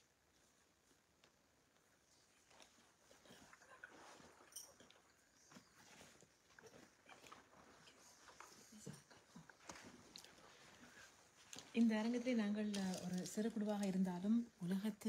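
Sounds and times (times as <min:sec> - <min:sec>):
faint clicks and rustles: 0:00.0 - 0:14.8.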